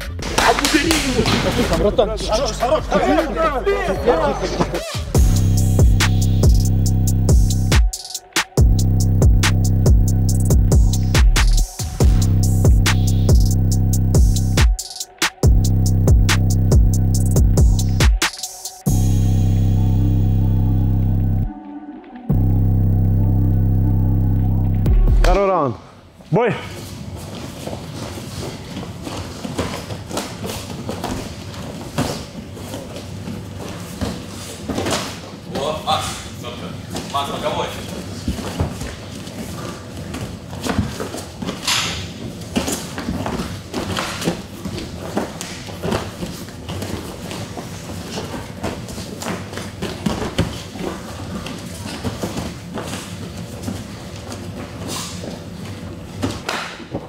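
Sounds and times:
indistinct voices: 0.0 - 5.6.

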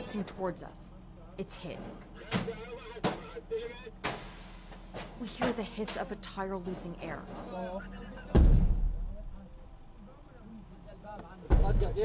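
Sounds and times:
air hissing from punctured tyre: 4.0 - 5.1.

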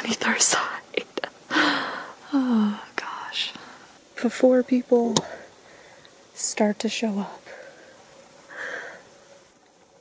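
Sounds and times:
room hiss: 0.0 - 10.0
short breath: 8.5 - 9.0.

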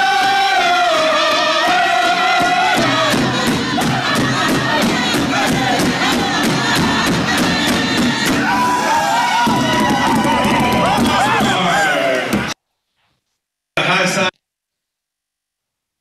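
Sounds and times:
big drum beats: 0.1 - 12.6
crowd cheering and whooping: 3.8 - 12.6.

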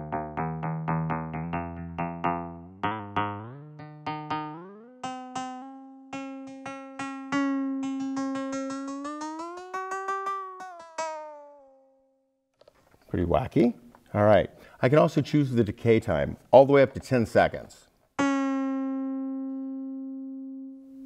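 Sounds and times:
electronic hand percussion tones: 0.0 - 12.0.

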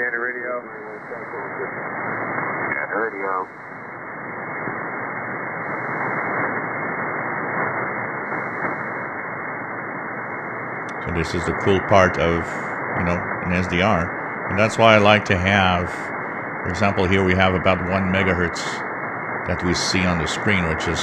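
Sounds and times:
faint radio voice transmission: 0.0 - 1.8, 2.7 - 3.5, 10.9 - 16.1, 16.7 - 18.8, 19.5 - 21.0
radio static hiss: 0.0 - 21.0.

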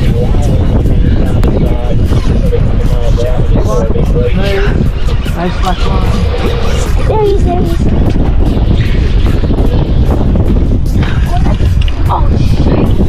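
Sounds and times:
wavering voice-like sounds: 0.0 - 8.0
wind buffeting microphone: 0.0 - 13.0.

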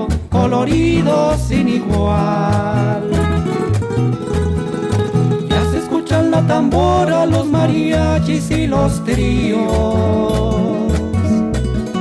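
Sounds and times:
instrumental song passage with bass: 0.0 - 12.0.

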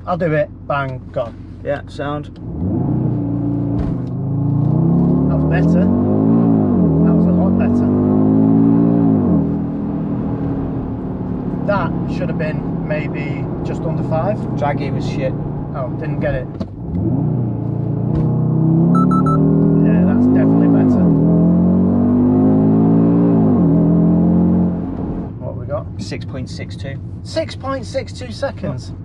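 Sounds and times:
car engine revving: 2.3 - 28.4.

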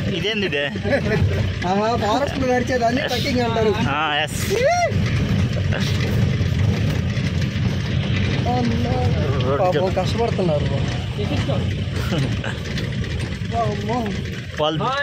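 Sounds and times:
vehicle engine rumble: 0.0 - 15.0
person whooping: 4.5 - 5.0.

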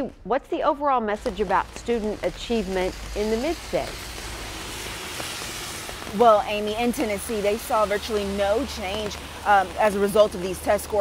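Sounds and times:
steady rain hiss: 1.0 - 11.0.

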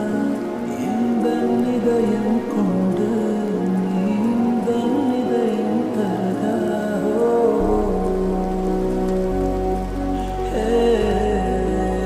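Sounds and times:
rain sound effect: 0.0 - 12.0
slowed lofi music: 0.0 - 12.0
deep bass: 7.6 - 12.0.

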